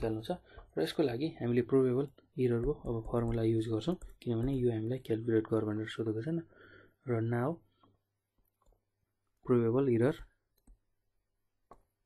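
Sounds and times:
person speaking: 0:00.0 - 0:07.7
stylus tapping on screen: 0:02.0 - 0:04.9, 0:11.6 - 0:12.0.

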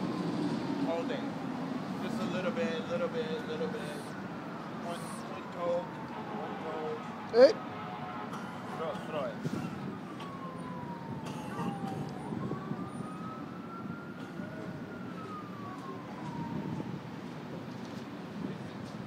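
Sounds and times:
emergency siren wailing: 0:00.0 - 0:19.0.

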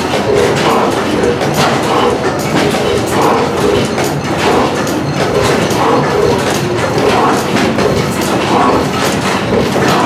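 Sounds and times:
stationary gas engines clattering: 0:00.0 - 0:10.0.

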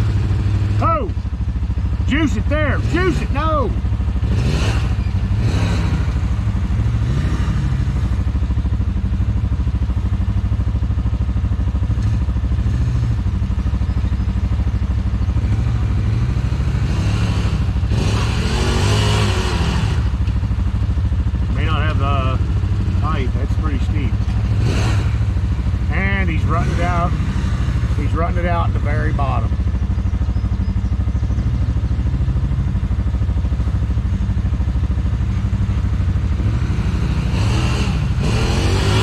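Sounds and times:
utv engine idling: 0:00.0 - 0:39.0
engine revving up and down: 0:02.1 - 0:08.3, 0:15.3 - 0:20.3, 0:21.5 - 0:29.5, 0:36.2 - 0:39.0.

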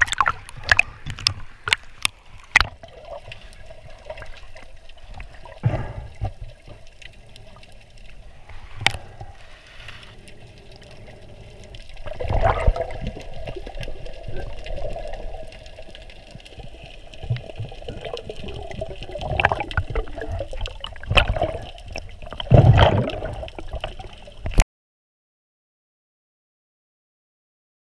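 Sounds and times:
muffled underwater water sloshing: 0:00.0 - 0:24.6.

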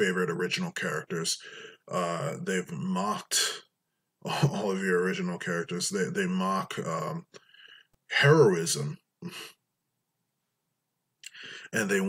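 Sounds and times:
man's short breath: 0:11.3 - 0:11.7.

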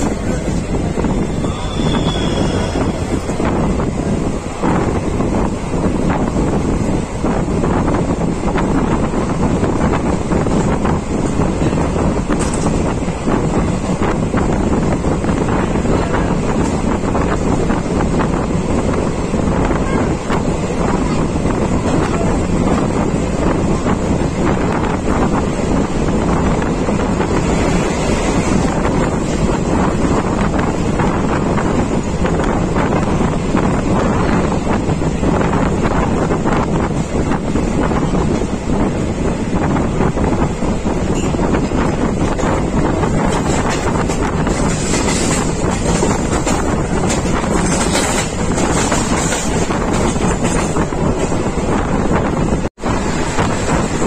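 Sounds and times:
train running on track: 0:00.0 - 0:54.0
wind buffeting microphone: 0:00.0 - 0:54.0.

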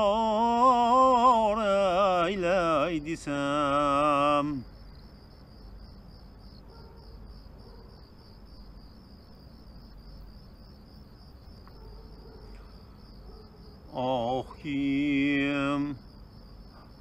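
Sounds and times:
crickets chirping: 0:00.0 - 0:17.0
low background hum: 0:00.0 - 0:17.0.

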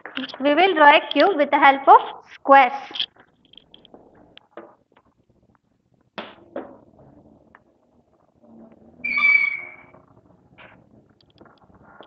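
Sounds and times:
high-pitched chalk squeak: 0:09.0 - 0:10.0.

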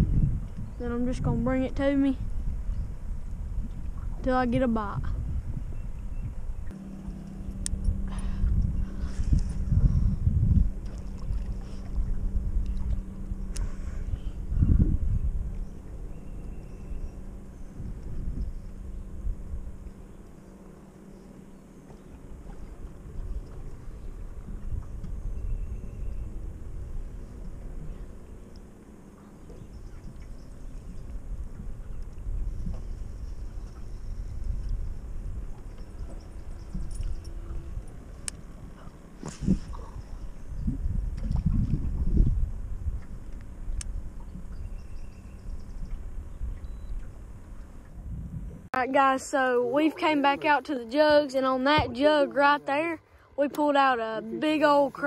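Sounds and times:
wind rumble on microphone: 0:00.0 - 0:49.8, 0:50.4 - 0:53.4
faint steady hum: 0:00.0 - 0:55.0.

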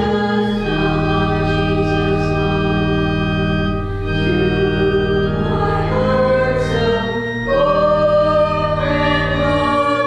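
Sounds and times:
church organ: 0:00.0 - 0:10.0
voices singing a hymn: 0:00.0 - 0:10.0.

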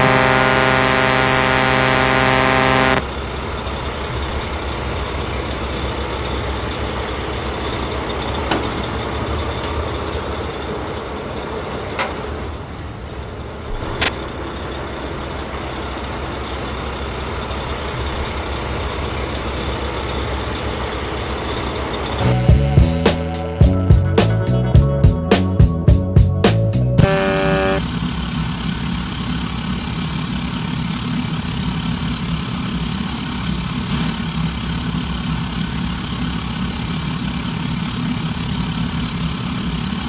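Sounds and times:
truck horn blaring: 0:00.0 - 0:03.1, 0:22.2 - 0:24.0, 0:27.0 - 0:28.6
noisy engine-like rumble: 0:00.0 - 0:24.7, 0:26.5 - 0:40.0
music: 0:22.2 - 0:27.8.

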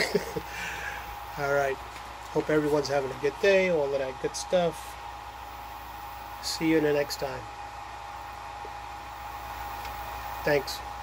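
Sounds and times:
low hum: 0:00.0 - 0:11.0
power inverters and fans whirring: 0:00.0 - 0:11.0.

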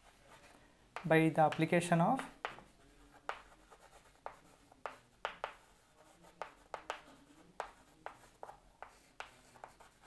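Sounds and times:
chalk tapping on chalkboard: 0:00.0 - 0:10.0.

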